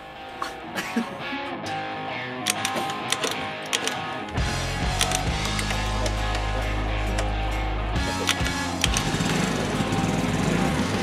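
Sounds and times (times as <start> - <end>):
guitar music: 0.0 - 11.0
engine knocks: 8.0 - 11.0
scooter engine kick-started: 8.0 - 11.0.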